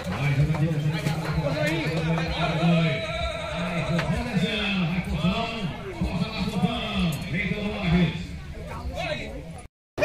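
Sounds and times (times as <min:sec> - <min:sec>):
man talking: 0:00.1 - 0:08.3.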